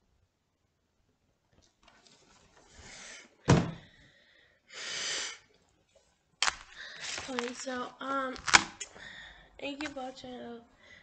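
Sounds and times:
cardboard box rustling: 0:07.0 - 0:07.8.

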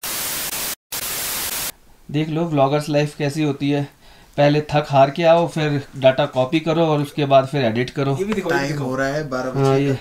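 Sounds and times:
white-noise static hiss: 0:00.0 - 0:10.0.

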